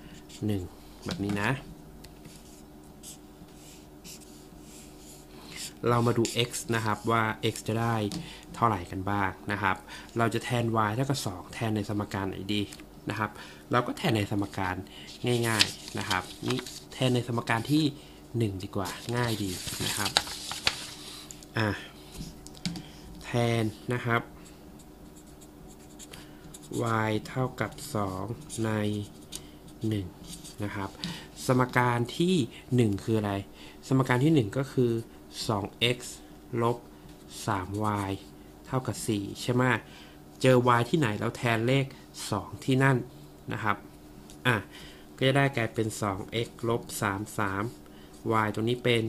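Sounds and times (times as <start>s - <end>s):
man speaking: 0.4s - 1.7s, 5.8s - 20.2s, 21.6s - 22.0s, 23.2s - 24.3s, 26.7s - 29.1s, 29.8s - 36.8s
marker scratching on paper: 2.3s - 7.2s, 25.0s - 27.0s.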